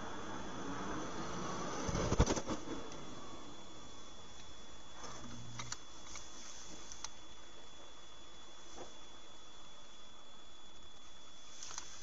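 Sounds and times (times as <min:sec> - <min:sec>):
road noise inside vehicle: 0:00.0 - 0:04.3.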